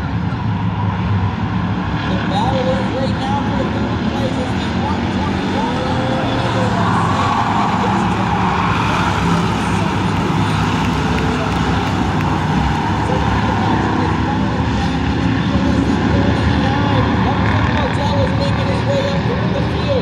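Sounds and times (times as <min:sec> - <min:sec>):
many race car engines: 0:00.0 - 0:20.0.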